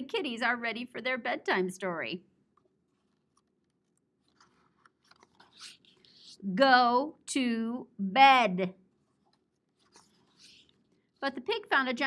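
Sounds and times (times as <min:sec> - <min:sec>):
page being turned: 0:02.9 - 0:06.4.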